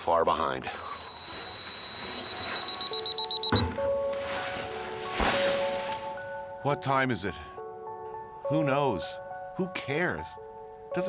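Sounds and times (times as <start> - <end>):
alarm clock beeping: 0.8 - 3.7
thunk: 3.5 - 3.8.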